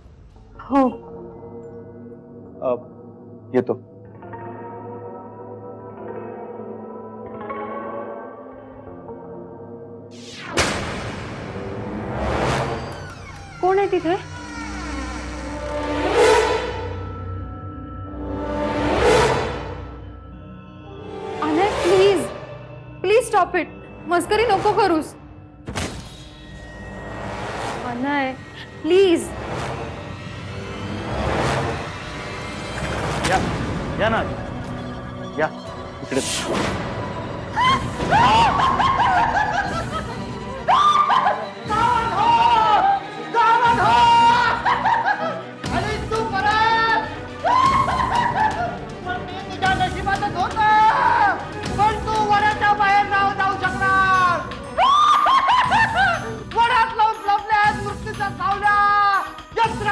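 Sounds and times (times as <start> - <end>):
eerie background score: 0.0 - 59.9.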